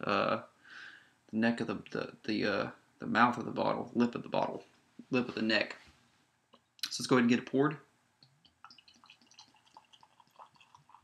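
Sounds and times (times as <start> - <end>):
beer pouring into a glass: 8.7 - 11.0.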